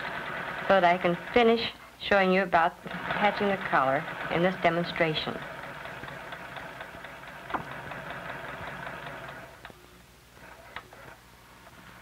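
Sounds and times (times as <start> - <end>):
sewing machine stitching: 0.0 - 1.7, 2.8 - 9.6.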